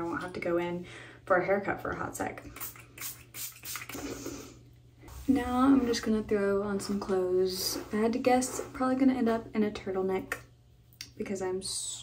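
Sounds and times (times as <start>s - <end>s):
spray bottle spritzing: 2.6s - 4.2s.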